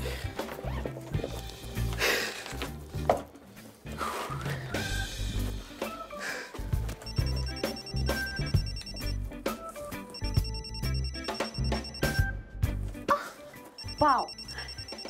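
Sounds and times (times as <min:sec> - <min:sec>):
background music with steady beat: 0:00.0 - 0:15.0
mobile phone ringing: 0:06.9 - 0:12.4, 0:13.7 - 0:15.0.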